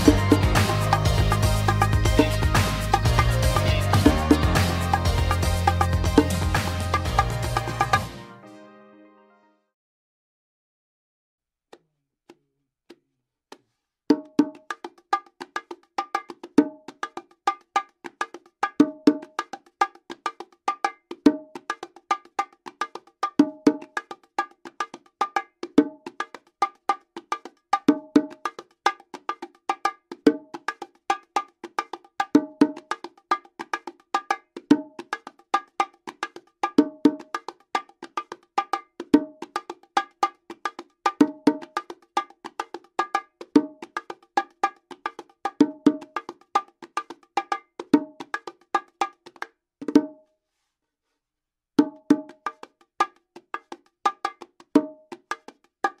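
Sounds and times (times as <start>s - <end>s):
bongos played by hand: 0.0s - 8.3s, 11.8s - 50.2s, 51.8s - 56.0s.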